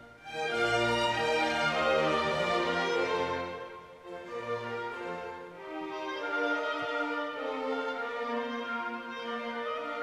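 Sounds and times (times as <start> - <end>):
slow orchestral string music: 0.0 - 10.0.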